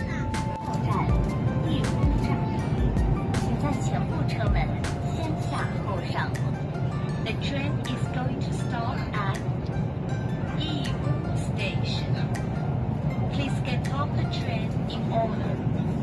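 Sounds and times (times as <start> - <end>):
voices: 0.0 - 2.8, 3.4 - 6.5, 13.3 - 15.7
music: 0.0 - 16.0
train carriage rumble: 0.0 - 16.0.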